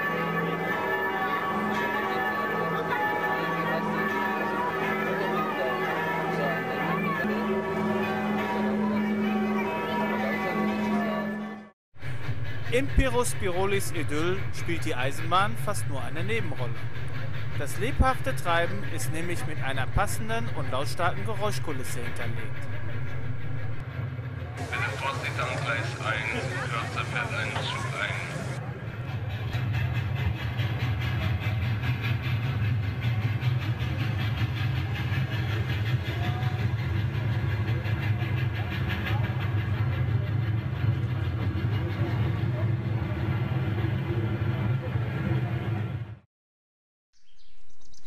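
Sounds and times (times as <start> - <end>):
crowd chatter: 0.0 - 11.6, 24.4 - 45.8
low train rumble: 0.0 - 46.2
birdsong with rising chirps: 47.2 - 48.0.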